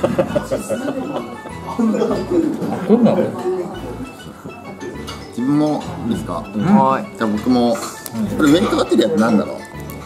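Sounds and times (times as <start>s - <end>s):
laughter: 0.0s - 3.4s
background music: 0.0s - 10.0s.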